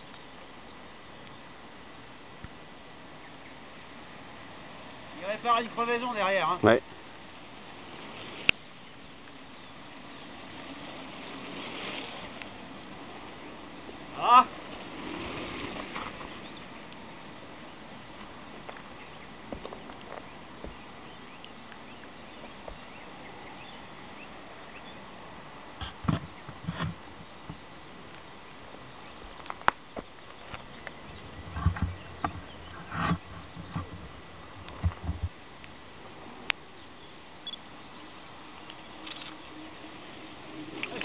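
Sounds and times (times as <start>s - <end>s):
bike tyres crunching on gravel: 13.8s - 16.8s.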